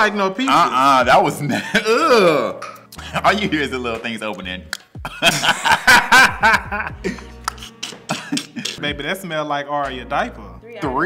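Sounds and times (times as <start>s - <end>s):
men laughing: 1.4s - 3.8s, 5.0s - 8.8s.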